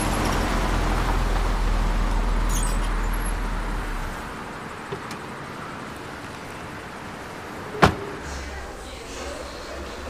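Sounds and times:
outdoor background hiss: 0.0s - 10.0s
car door slamming: 7.6s - 8.4s.

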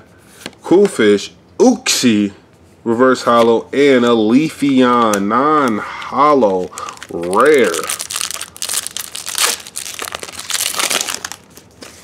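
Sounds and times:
foil wrapper crinkling: 6.4s - 12.0s.

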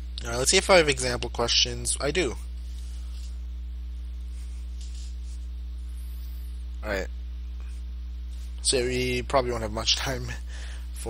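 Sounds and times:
low electrical hum: 0.0s - 11.0s
man speaking: 0.2s - 2.5s, 6.8s - 7.1s, 8.6s - 11.0s.

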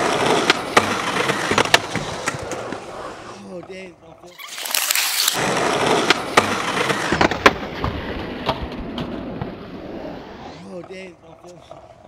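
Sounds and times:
skateboard and skater hitting ground: 0.0s - 3.4s, 4.4s - 10.6s
skateboard wheels rolling on asphalt: 0.0s - 12.0s.

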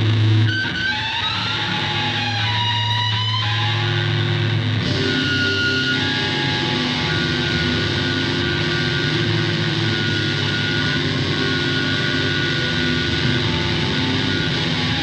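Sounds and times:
distorted guitar and bass drone: 0.0s - 15.0s.

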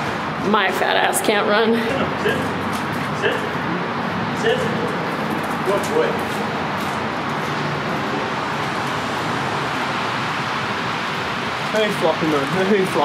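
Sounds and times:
street traffic: 0.0s - 13.0s.

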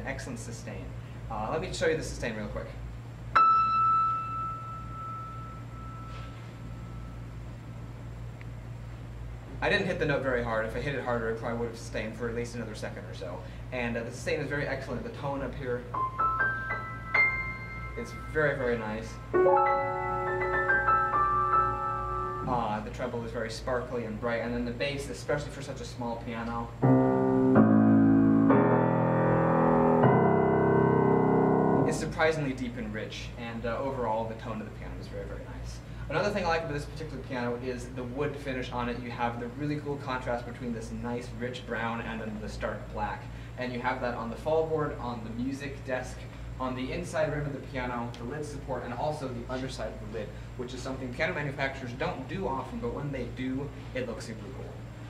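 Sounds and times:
steady low hum: 0.0s - 55.0s
high piano note ringing: 3.3s - 7.4s, 15.8s - 22.9s, 26.8s - 32.2s.

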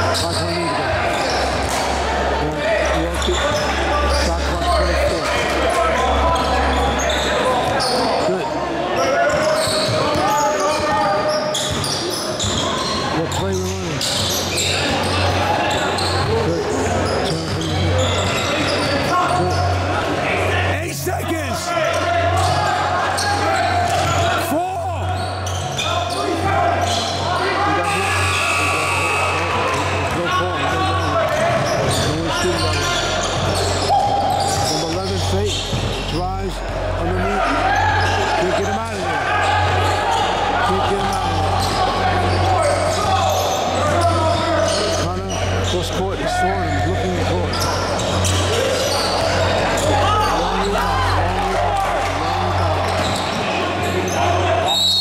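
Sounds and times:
spectators' voices: 0.0s - 55.0s
players shouting: 14.2s - 35.5s, 36.5s - 55.0s.

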